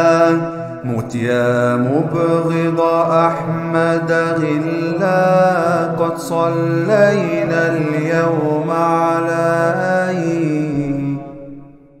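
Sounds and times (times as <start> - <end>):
man singing: 0.0 - 11.8.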